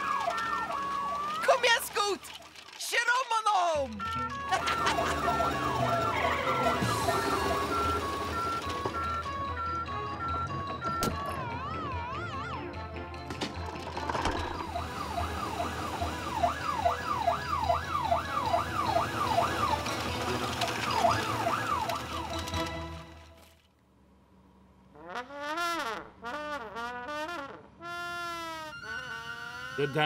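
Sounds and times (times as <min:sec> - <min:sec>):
cartoon police siren: 0:00.0 - 0:02.4, 0:03.9 - 0:13.1, 0:14.2 - 0:22.7, 0:28.6 - 0:30.0
background music: 0:03.4 - 0:23.6.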